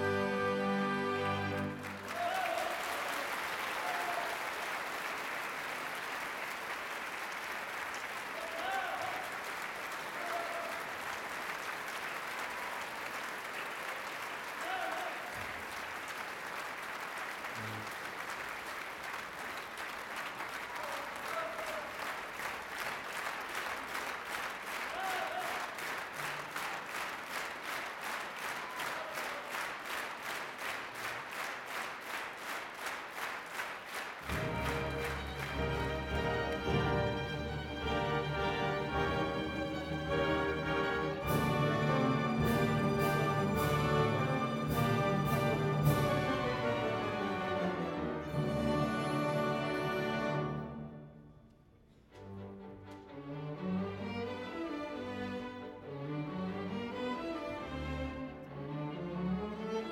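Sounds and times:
audience applauding: 0.9s - 48.4s
rhythmic clapping in unison: 1.5s - 47.2s
shouts from crowd: 2.0s - 4.5s, 8.4s - 9.3s, 10.2s - 10.8s, 14.6s - 15.4s, 24.9s - 25.7s.

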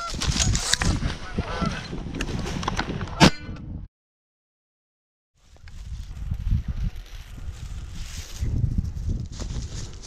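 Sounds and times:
geese honking: 1.2s - 1.8s.

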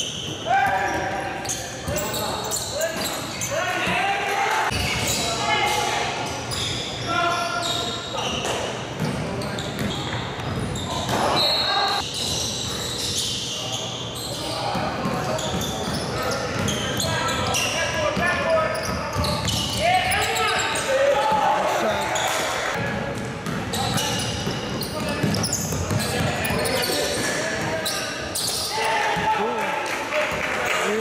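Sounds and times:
people shouting and chattering: 0.0s - 12.2s, 13.6s - 31.0s.

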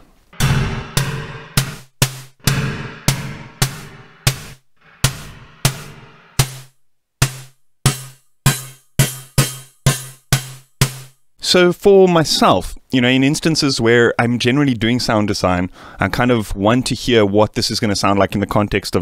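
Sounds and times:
synthesized snare hits with reverb: 0.4s - 11.1s.

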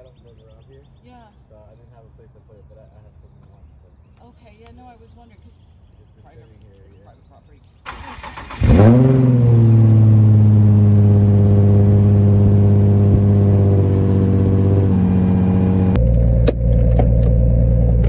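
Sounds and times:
car engine starting and idling: 7.9s - 18.0s
engine and road noise in car: 7.9s - 18.0s.

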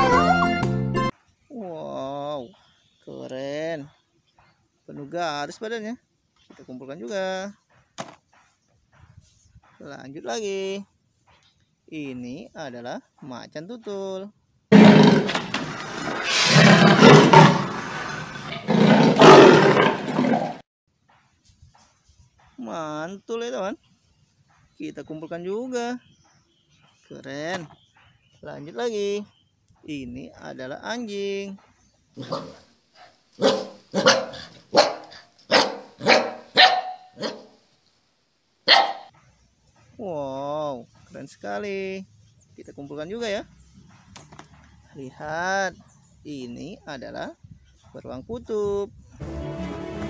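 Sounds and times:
big cat roaring: 14.7s - 20.6s
puppy barking: 32.2s - 37.6s, 38.7s - 39.2s.

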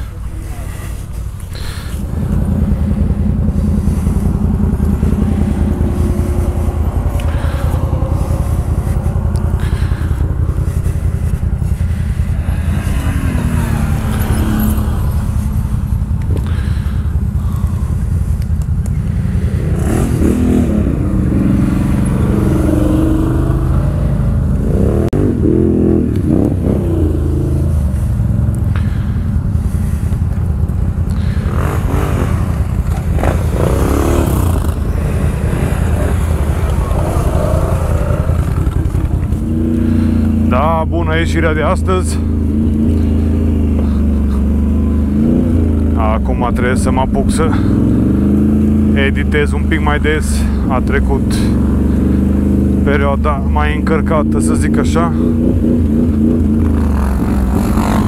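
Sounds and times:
atv engine running steadily: 0.0s - 58.0s
quad engines revving: 0.0s - 58.0s.

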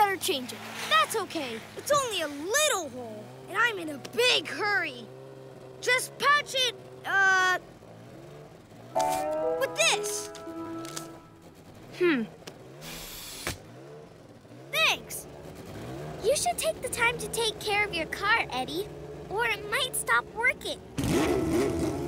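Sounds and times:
background music: 9.0s - 11.5s
held chord of steady tones: 9.0s - 11.5s.

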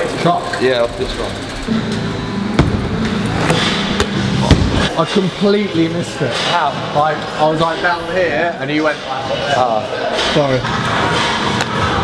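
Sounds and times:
steady low hum: 0.8s - 7.4s.

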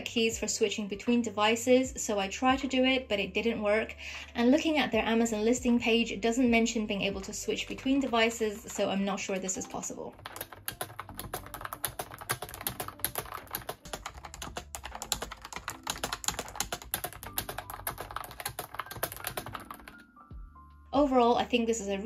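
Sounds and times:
keyboard typing clicks: 10.1s - 20.0s.

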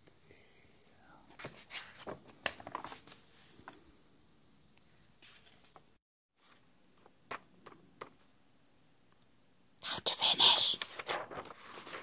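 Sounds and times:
paper pages turning: 1.4s - 3.8s, 10.6s - 12.0s.

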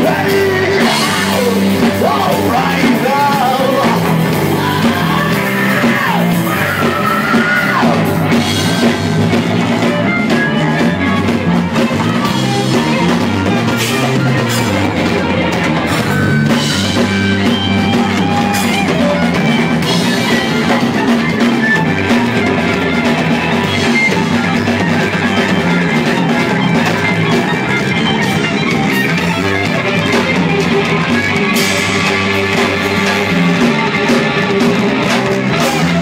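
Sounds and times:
live rock band playing: 0.0s - 36.0s.

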